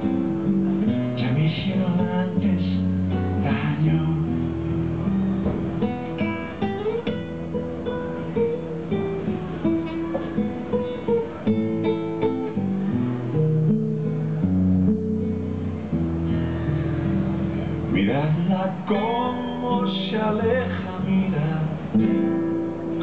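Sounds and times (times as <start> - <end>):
acoustic guitar playing: 0.0 - 23.0.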